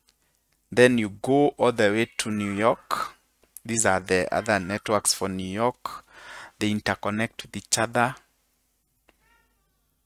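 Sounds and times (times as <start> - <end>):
man speaking: 0.7 - 8.3
faint high-pitched call: 9.1 - 9.9.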